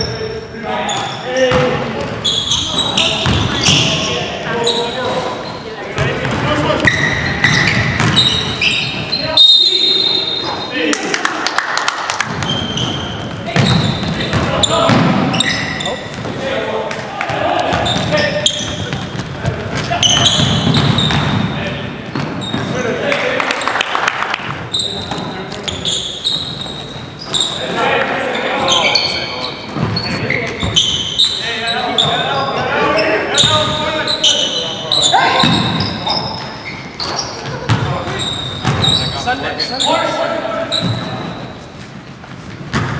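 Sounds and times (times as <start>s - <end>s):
players calling out: 0.0s - 23.8s, 24.4s - 41.7s
basketball bouncing on wood floor: 6.0s - 8.3s, 12.2s - 15.2s, 17.3s - 21.5s, 37.4s - 38.9s.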